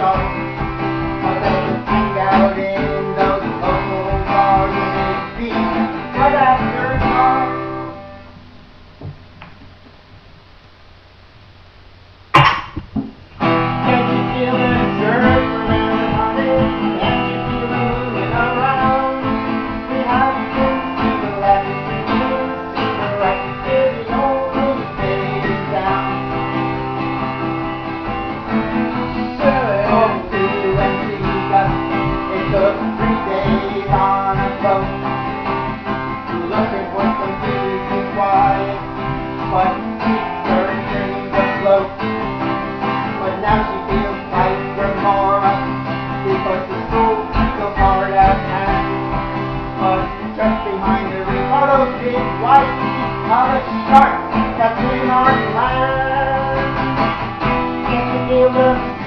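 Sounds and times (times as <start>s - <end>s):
acoustic guitar chords: 0.0s - 11.2s, 12.2s - 59.0s.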